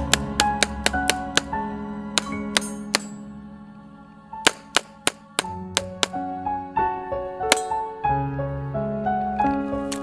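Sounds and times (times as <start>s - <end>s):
background music with melody: 0.0s - 10.0s
pistol shots: 7.5s - 7.8s.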